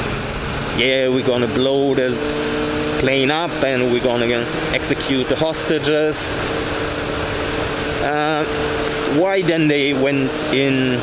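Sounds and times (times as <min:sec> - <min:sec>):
wind rushing over microphone: 0:00.0 - 0:09.3
motorcycle engine hum: 0:00.0 - 0:11.0.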